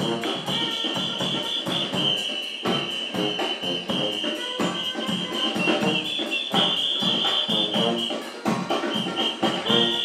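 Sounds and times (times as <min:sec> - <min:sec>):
brass band playing: 0:00.0 - 0:10.0
steady drum beat: 0:00.0 - 0:10.0.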